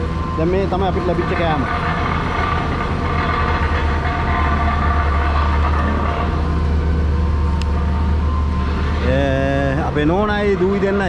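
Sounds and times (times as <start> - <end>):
diesel truck engine running: 0.0 - 11.0
faint steady whine: 0.0 - 11.0.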